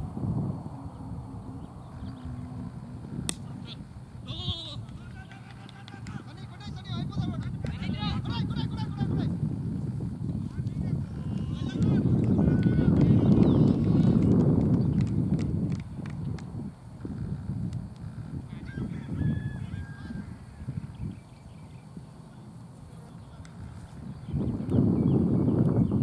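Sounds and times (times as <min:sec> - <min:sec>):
wind rumble on microphone: 0:00.0 - 0:26.0
faint high calls: 0:00.7 - 0:07.0.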